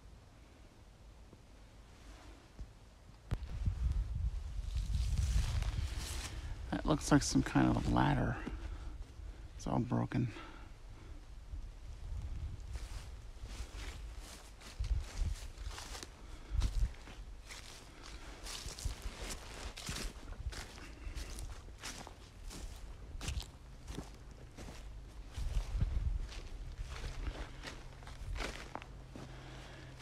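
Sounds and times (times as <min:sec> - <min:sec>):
footsteps on dry frosty grass: 0:03.3 - 0:10.6, 0:11.2 - 0:30.0.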